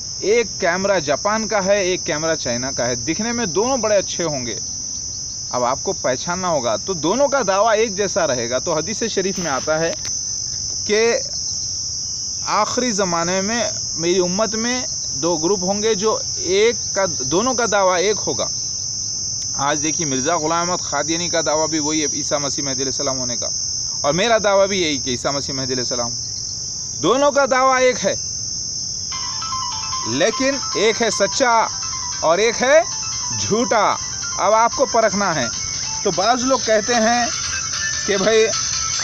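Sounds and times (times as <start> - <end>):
insect drone: 0.0 - 39.0
low steady tone: 29.1 - 39.0.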